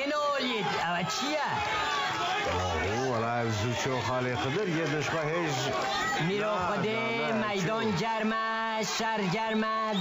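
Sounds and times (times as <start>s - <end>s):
man talking: 2.5s - 7.9s.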